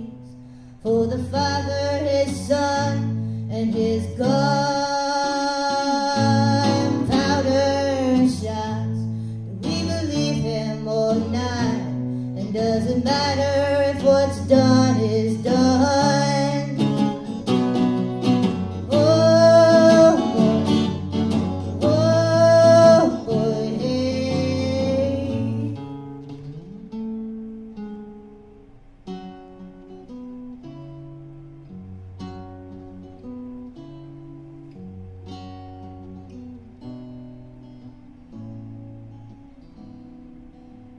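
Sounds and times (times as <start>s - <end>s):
woman singing: 0.0s - 17.0s, 18.8s - 21.0s, 21.7s - 25.8s
plucked guitar: 0.0s - 40.9s.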